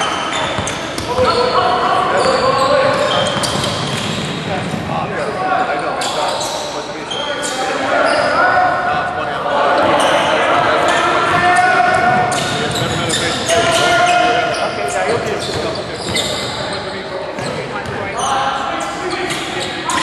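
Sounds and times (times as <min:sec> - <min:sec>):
echoing indistinct voices: 0:00.0 - 0:20.0.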